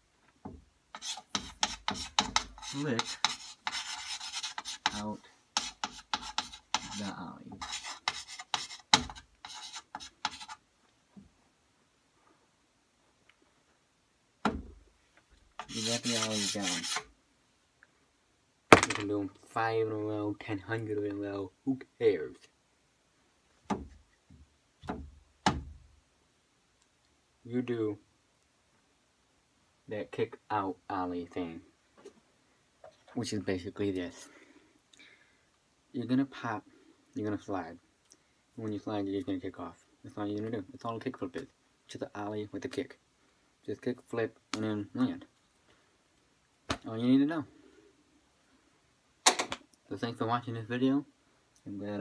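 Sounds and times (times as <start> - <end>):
chalk scratching on chalkboard: 0.9 - 10.6, 15.6 - 17.1
chalk tapping on chalkboard: 0.9 - 10.6, 15.6 - 17.0.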